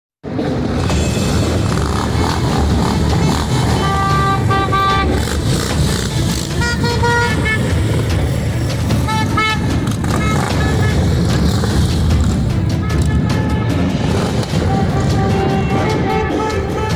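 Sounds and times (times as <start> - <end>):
horns tooting: 0.3 - 16.9
motorcycle engines running: 0.3 - 16.9.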